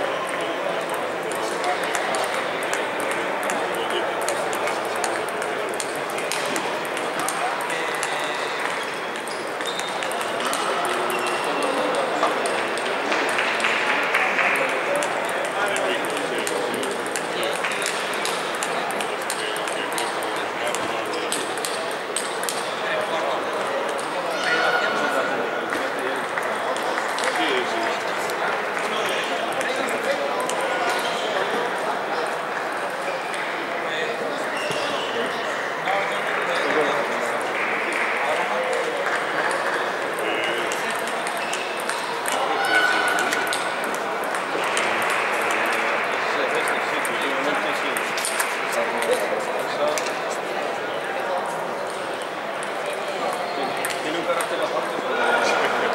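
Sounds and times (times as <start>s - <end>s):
chatter of many voices: 0.0s - 55.9s
ping-pong balls clicking: 0.2s - 24.6s, 25.6s - 31.6s, 36.2s - 50.5s, 51.7s - 55.8s.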